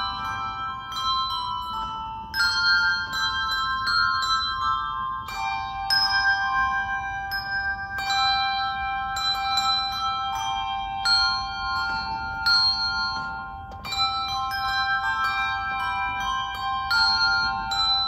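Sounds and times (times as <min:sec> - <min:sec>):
handbell choir ringing: 0:00.0 - 0:18.0.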